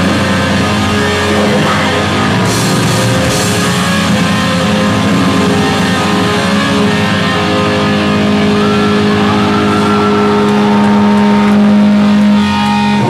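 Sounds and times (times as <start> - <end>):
distorted electric guitars: 0.0 - 13.0
heavy metal band playing: 0.0 - 13.0.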